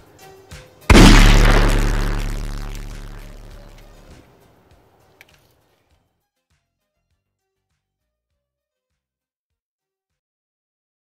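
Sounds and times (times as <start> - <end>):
distorted bass-boosted boom: 0.9 - 4.0.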